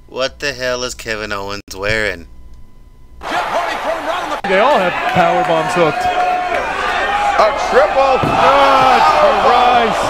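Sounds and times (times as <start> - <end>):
excited voices shouting: 3.2 - 10.0.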